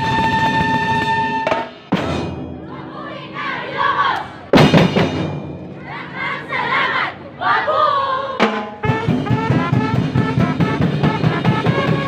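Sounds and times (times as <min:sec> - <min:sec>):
loud drum strikes: 0:01.5 - 0:02.6, 0:04.5 - 0:05.7
group of voices shouting: 0:02.7 - 0:04.5, 0:05.8 - 0:08.4.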